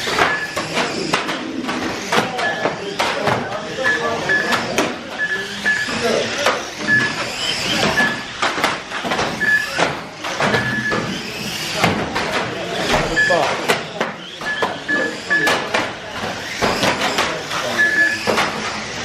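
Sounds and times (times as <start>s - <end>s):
murmur of voices: 0.0s - 19.0s
radio-controlled car motors whining: 0.0s - 19.0s
toy cars knocking into barriers: 0.0s - 19.0s
short high beeps: 3.8s - 6.0s, 6.8s - 7.3s, 17.8s - 18.2s.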